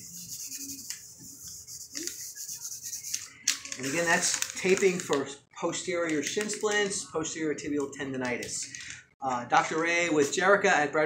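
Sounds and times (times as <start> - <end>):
hands rubbing tape on skin: 0.0 - 5.0.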